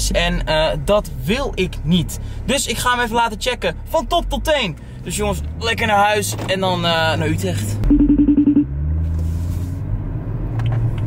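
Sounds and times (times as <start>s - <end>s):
car engine rumbling inside cabin: 0.0s - 11.0s.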